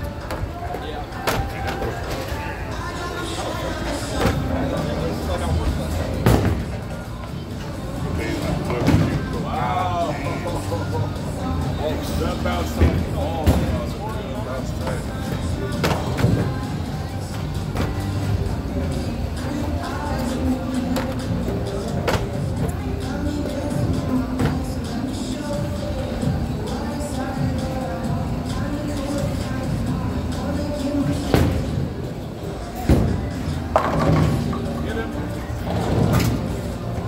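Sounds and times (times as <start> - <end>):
chatter: 0.0 - 37.0
music: 0.0 - 37.0
bowling balls rolling on lanes: 31.0 - 37.0.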